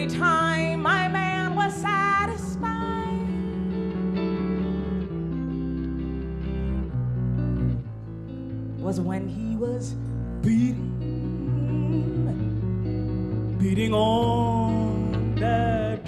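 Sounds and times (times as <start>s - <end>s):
woman singing: 0.0s - 4.3s, 8.8s - 12.7s, 13.6s - 16.0s
electric guitar chords: 0.0s - 16.0s
upright bass notes: 0.0s - 16.0s.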